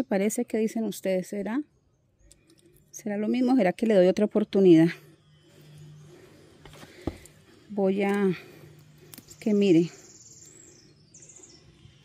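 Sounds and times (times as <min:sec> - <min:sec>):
small bird trilled chirping: 0:09.2 - 0:12.0.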